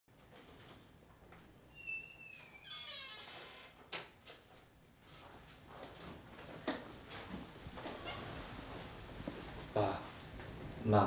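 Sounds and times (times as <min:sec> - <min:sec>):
door squeaking: 0:01.5 - 0:04.2, 0:05.4 - 0:06.2, 0:07.8 - 0:08.4.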